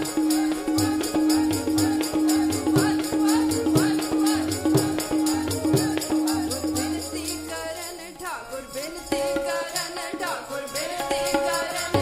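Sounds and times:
tabla beat: 0:00.0 - 0:07.9, 0:09.1 - 0:12.0
harmonium holding a reedy note: 0:00.0 - 0:12.0
women singing a hymn: 0:00.0 - 0:12.0.

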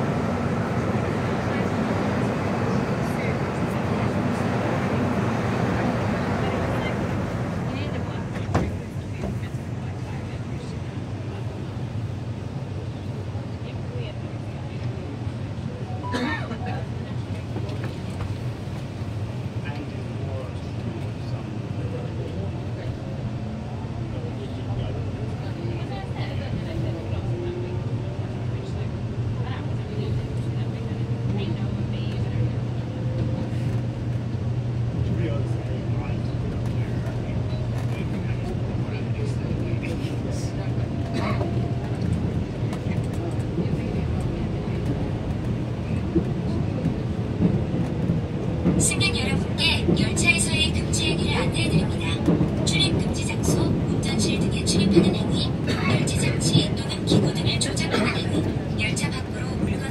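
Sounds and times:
wheels rumbling on rails: 0:00.0 - 0:59.9.

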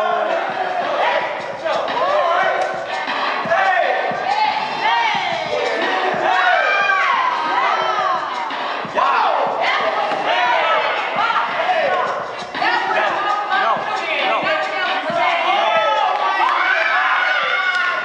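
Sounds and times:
crowd shouting and hollering: 0:00.0 - 0:18.0.

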